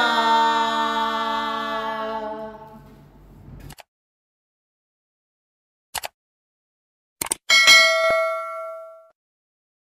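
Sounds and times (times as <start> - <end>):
quick clicks: 6.0 - 6.2, 7.2 - 7.4
bright bell ding: 7.5 - 9.2.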